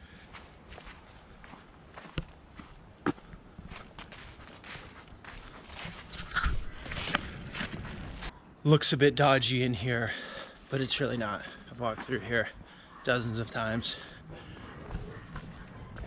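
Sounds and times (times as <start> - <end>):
footsteps on leaf-strewn asphalt: 0.3 - 8.3.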